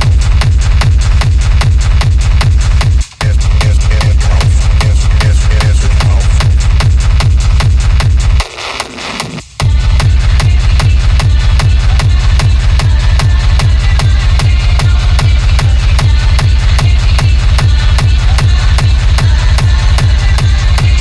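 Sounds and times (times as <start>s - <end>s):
four-on-the-floor kick drum: 0.0s - 21.0s
heavy distorted bass: 0.0s - 21.0s
synth noise: 3.2s - 9.4s.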